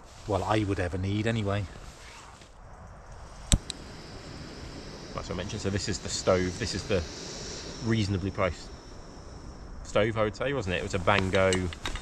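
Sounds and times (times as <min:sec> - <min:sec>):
camping gear clicks: 0:03.4 - 0:03.8, 0:11.1 - 0:12.0.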